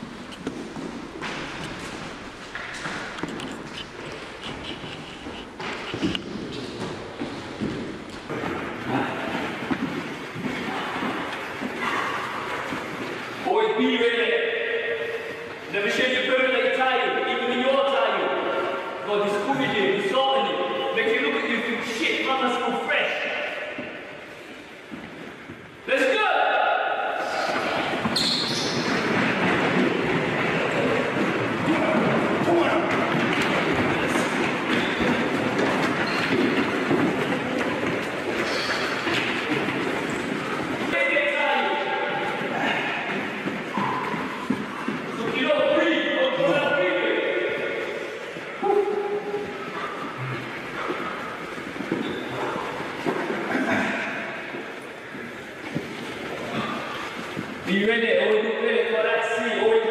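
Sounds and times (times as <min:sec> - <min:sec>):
feet shuffling and stamping: 0:00.0 - 0:13.4, 0:27.2 - 0:46.1, 0:47.8 - 0:57.8
footfalls on hard gym floor: 0:00.0 - 0:13.4, 0:27.3 - 0:46.4, 0:48.4 - 0:57.7.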